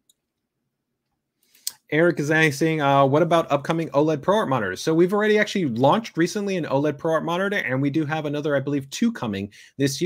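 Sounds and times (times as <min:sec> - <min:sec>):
man's voice: 0:01.9 - 0:10.0.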